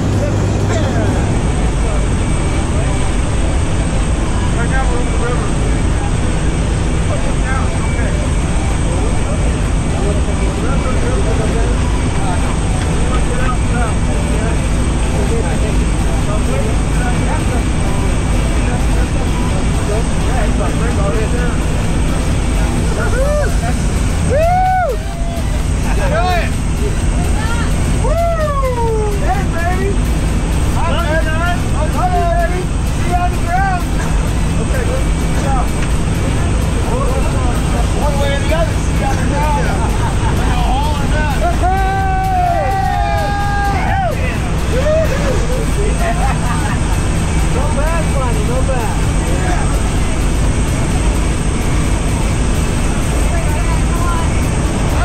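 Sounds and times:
airplane engine and propeller drone: 0.0s - 55.0s
voices: 0.0s - 55.0s.

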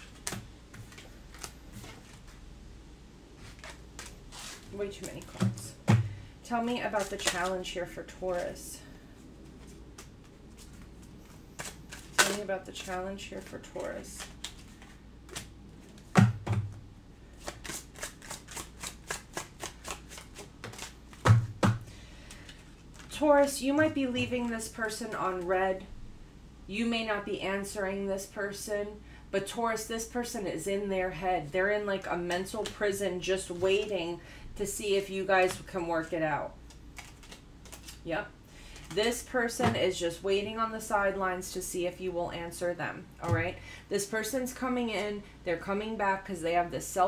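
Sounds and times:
faint rustling of card deck: 0.0s - 2.5s, 3.4s - 5.6s, 6.6s - 16.2s, 22.2s - 25.5s, 35.4s - 39.8s
cards knocking on table: 16.1s - 16.8s
cards snapping while shuffled: 17.4s - 23.1s, 36.6s - 38.0s.

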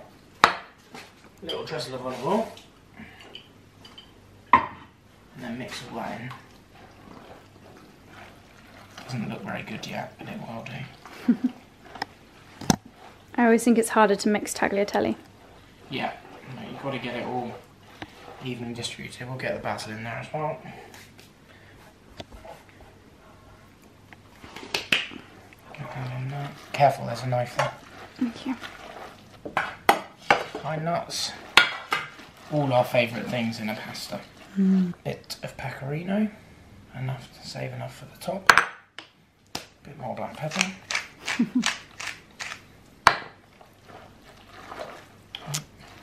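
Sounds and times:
wooden spoon stirring pasta: 5.2s - 37.6s, 41.7s - 46.0s
person speaking: 32.5s - 35.1s
pepper mill grinding: 40.5s - 42.7s.

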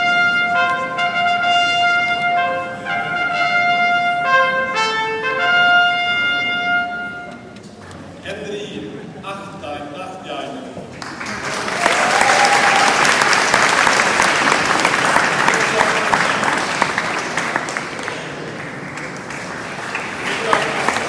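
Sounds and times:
audience applauding: 10.9s - 21.0s.

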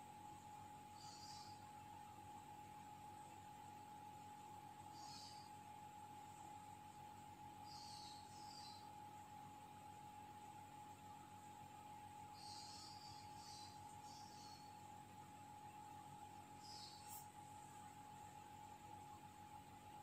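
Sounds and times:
faint high-pitched whine: 0.0s - 20.0s.

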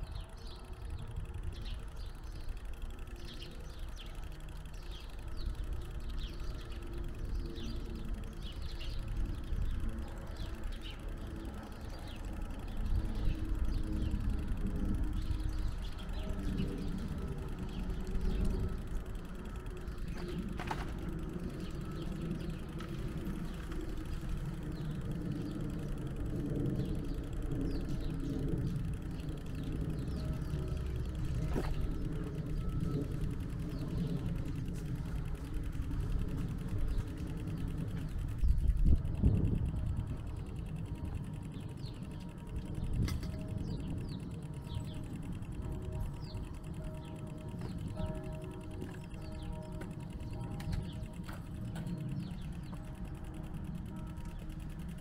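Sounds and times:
small birds chirping: 0.0s - 55.0s
steady low rumble: 0.0s - 55.0s.

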